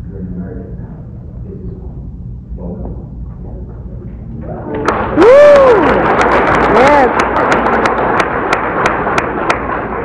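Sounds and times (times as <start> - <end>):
audience applauding: 4.6 - 10.0
sharp hand claps close by: 6.1 - 10.0.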